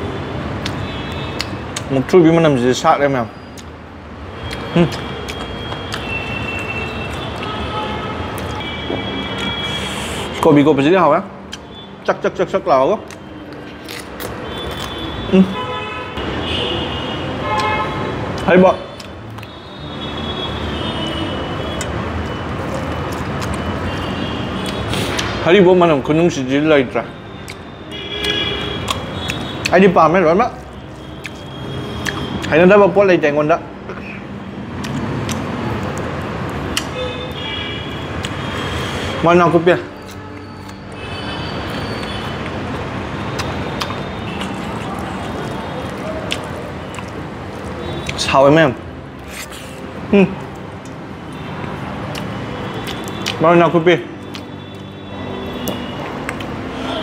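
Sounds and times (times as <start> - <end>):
road traffic rushing: 0.0 - 57.0
vehicle horn tooting: 5.6 - 10.4, 14.4 - 18.2.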